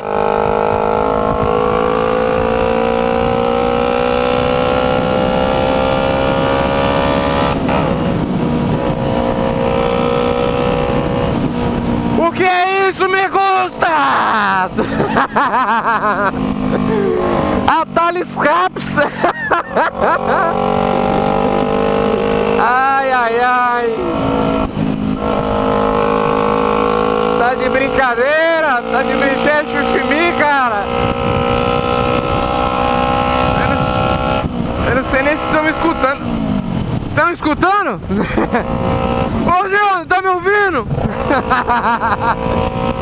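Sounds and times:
man laughing: 0:13.3 - 0:20.9, 0:38.0 - 0:39.0, 0:40.9 - 0:42.7
loud motorcycle engine running: 0:20.0 - 0:37.1.

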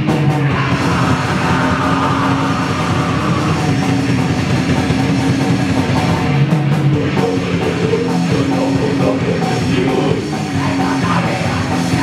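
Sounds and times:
distorted electric guitar: 0:00.0 - 0:12.0
drum kit: 0:00.0 - 0:12.0
punk band playing live: 0:00.0 - 0:12.0.

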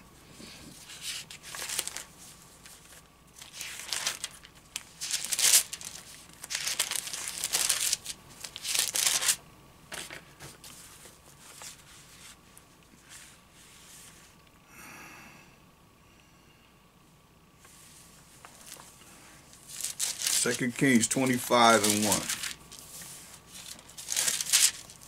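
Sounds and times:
thin pages being turned: 0:00.8 - 0:09.4, 0:10.0 - 0:14.2, 0:18.4 - 0:25.0.

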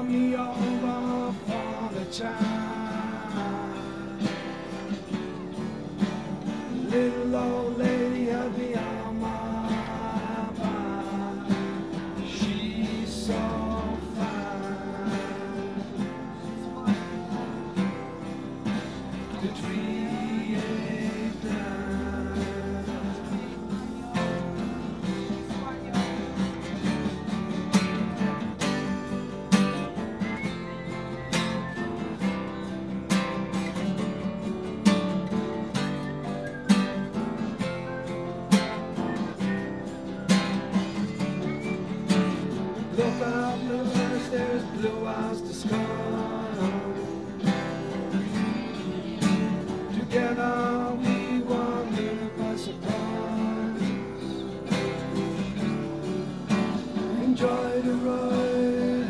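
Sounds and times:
acoustic guitar strumming and picking: 0:00.0 - 0:59.0.

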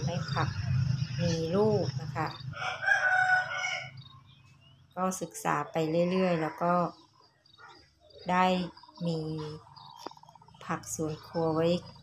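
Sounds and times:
rooster crowing: 0:02.5 - 0:04.3, 0:06.0 - 0:07.0.

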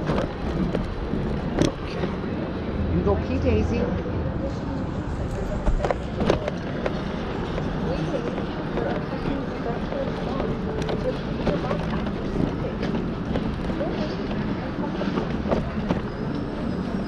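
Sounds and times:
traffic on road: 0:00.0 - 0:17.0.

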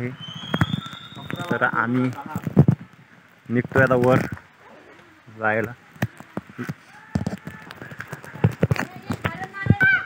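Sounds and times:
footsteps on stone steps: 0:00.3 - 0:04.5, 0:05.5 - 0:10.0.

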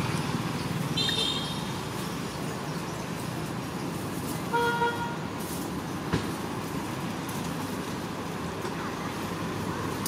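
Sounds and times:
outdoor background rumble: 0:00.0 - 0:10.0.

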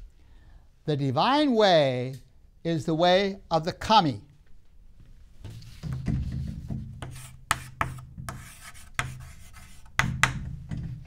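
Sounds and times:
chalk scratching on blackboard: 0:07.0 - 0:10.4
chalk tapping on board: 0:07.0 - 0:10.4.

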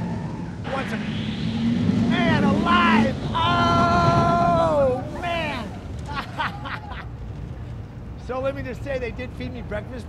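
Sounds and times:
riders screaming and whooping: 0:00.0 - 0:00.8, 0:02.1 - 0:07.1
roller coaster train running: 0:00.0 - 0:07.6
rush of wind: 0:00.0 - 0:08.2.

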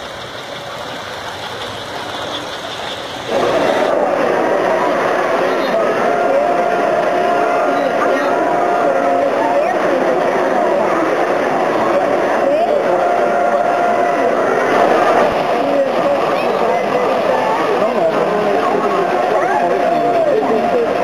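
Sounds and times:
crowd chatter: 0:00.0 - 0:21.0
model trains running on track: 0:00.0 - 0:21.0.

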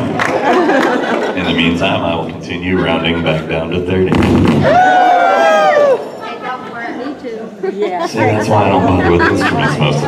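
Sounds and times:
people talking quietly: 0:06.2 - 0:10.0.

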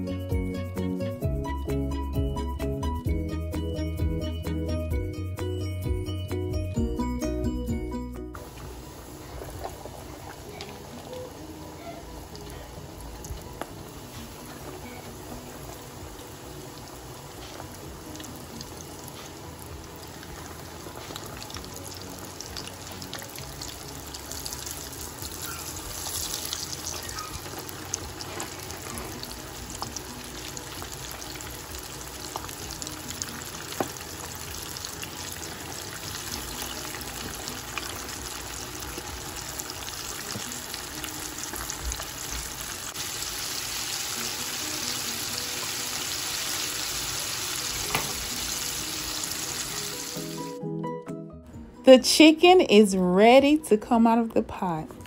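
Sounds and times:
chicken deep frying in oil: 0:08.4 - 0:50.5.

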